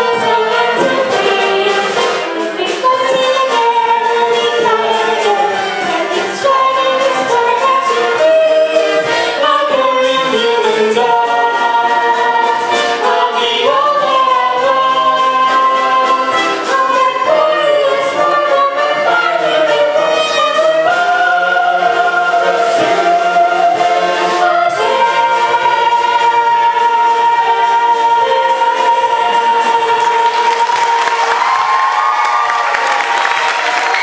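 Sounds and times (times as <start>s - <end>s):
chorus singing: 0.0s - 34.0s
instrumental accompaniment: 0.0s - 34.0s.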